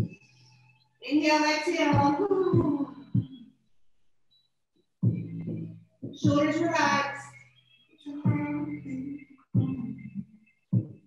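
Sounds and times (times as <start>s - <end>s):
soft background music: 0.0s - 3.4s, 5.0s - 11.0s
low pitched pulse: 5.0s - 6.5s.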